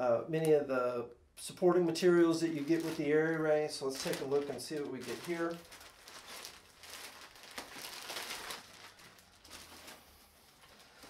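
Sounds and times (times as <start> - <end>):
plastic bags crinkling: 2.3 - 11.0.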